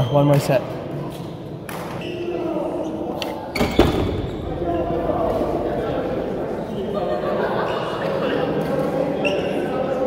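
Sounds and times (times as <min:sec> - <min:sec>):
echoing background chatter: 0:00.0 - 0:10.0.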